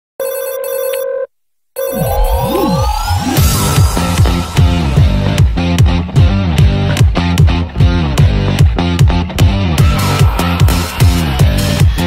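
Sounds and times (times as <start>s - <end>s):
electronic telephone ringing: 0.2s - 2.7s
sped-up pop song: 2.0s - 12.0s.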